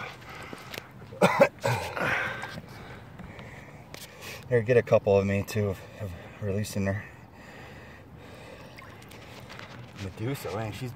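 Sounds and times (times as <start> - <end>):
water trickling and lapping: 7.3 - 10.9
small water drips and splashes: 8.4 - 10.0.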